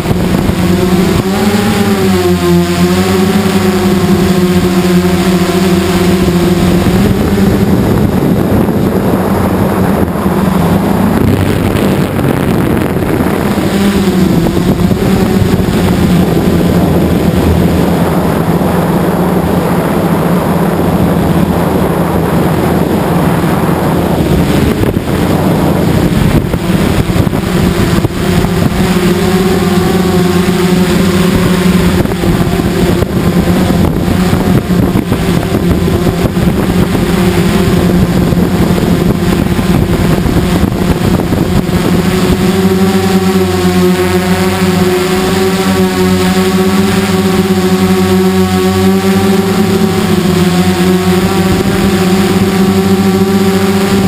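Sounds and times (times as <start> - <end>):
multirotor drone motors and propellers: 0.0 - 54.0.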